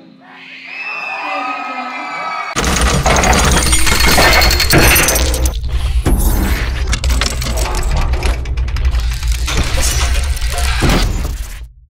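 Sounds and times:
glitchy clicks and crackles: 6.4s - 11.7s.

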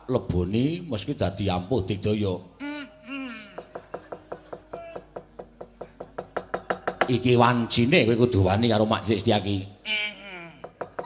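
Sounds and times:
fast wooden knocking: 3.6s - 7.7s, 10.6s - 11.0s.

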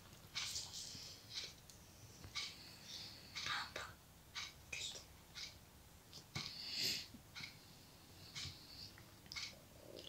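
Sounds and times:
person whispering: 0.4s - 1.2s, 3.4s - 4.0s, 4.7s - 5.1s.

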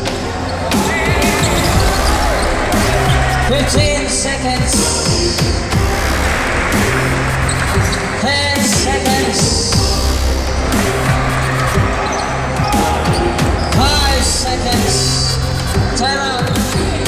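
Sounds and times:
music playing: 0.0s - 17.0s
people shouting: 0.0s - 17.0s.

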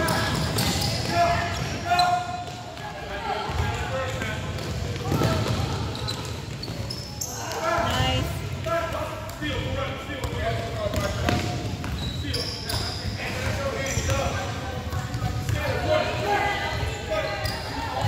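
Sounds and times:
basketball bouncing on gym floor: 2.4s - 7.0s, 9.5s - 15.7s.

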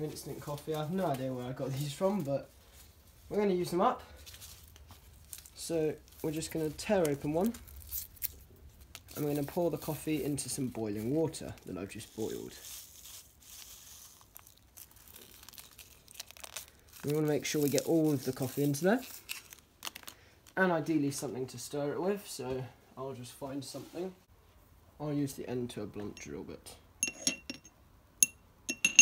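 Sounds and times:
coffee sachet crinkling: 4.2s - 20.6s
metal clinking against ceramic bowl: 27.0s - 29.0s.

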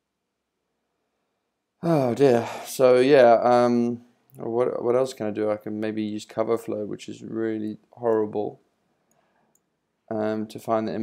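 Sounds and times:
man sighing oh: 1.8s - 2.8s.

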